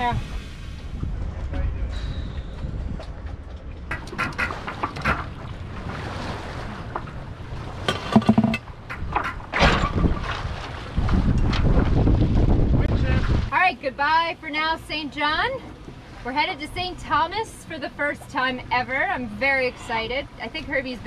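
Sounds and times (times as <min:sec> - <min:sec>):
wind buffeting microphone: 0:00.0 - 0:13.5
rigging clicks and squeaks: 0:03.3 - 0:05.4, 0:08.0 - 0:10.3.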